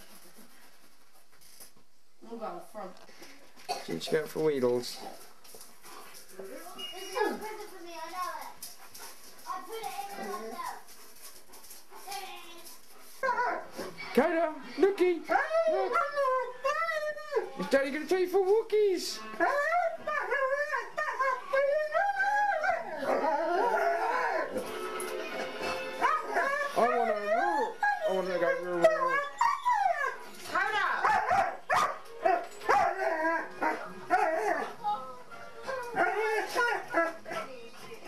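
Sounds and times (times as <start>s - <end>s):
dogs howling and whining: 13.2s - 14.1s, 15.2s - 17.6s, 19.3s - 24.7s, 26.0s - 37.6s.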